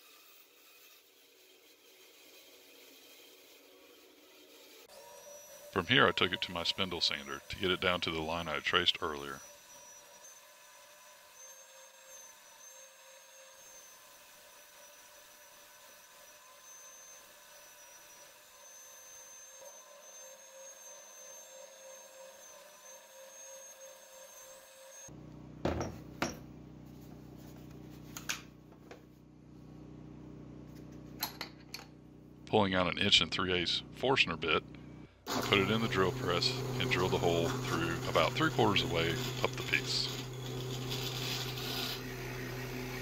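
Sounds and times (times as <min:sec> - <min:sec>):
spindle sander whining: 0:05.0 - 0:13.3, 0:34.4 - 0:43.0.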